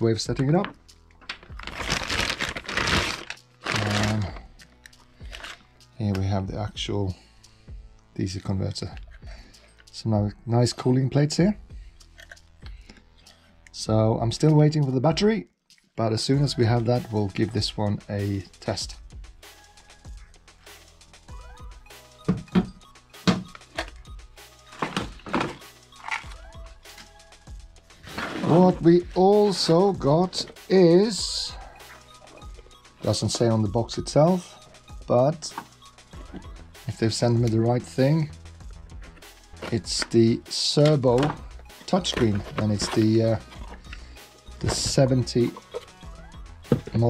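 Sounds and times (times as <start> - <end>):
faint background music: 0.0 - 47.0
plastic packaging rustling: 1.2 - 4.5, 41.2 - 44.0
plastic bag crinkling: 1.4 - 4.4
cardboard being handled: 1.6 - 4.3, 28.0 - 29.6, 41.1 - 43.8.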